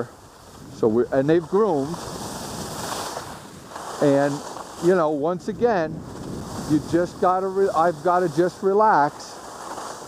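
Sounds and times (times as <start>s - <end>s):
wind rushing over microphone: 0.0s - 9.2s
skis sliding on snow: 0.0s - 10.0s.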